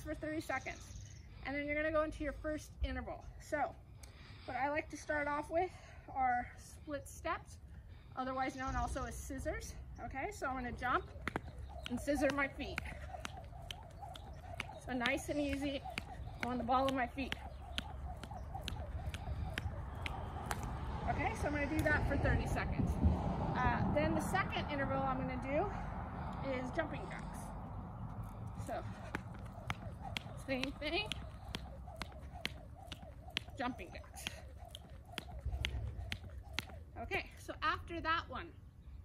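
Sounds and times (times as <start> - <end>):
skipping footsteps: 10.4 - 22.6, 28.1 - 37.4
jump rope slapping a mat: 10.7 - 22.0, 28.6 - 36.8.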